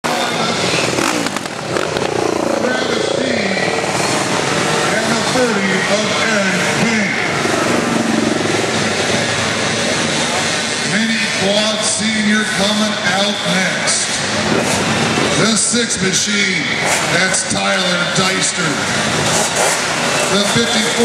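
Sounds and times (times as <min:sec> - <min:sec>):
indistinct voices: 0:00.0 - 0:19.3, 0:20.1 - 0:21.0
small engine running: 0:00.1 - 0:06.5, 0:07.2 - 0:10.9, 0:18.8 - 0:21.0.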